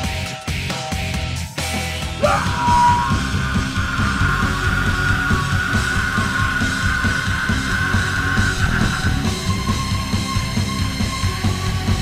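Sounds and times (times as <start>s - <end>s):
high sliding held note: 2.2s - 3.4s.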